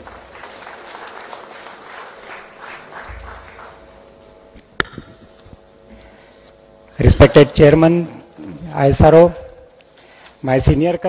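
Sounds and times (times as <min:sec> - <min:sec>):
audience applauding: 0:00.0 - 0:04.0.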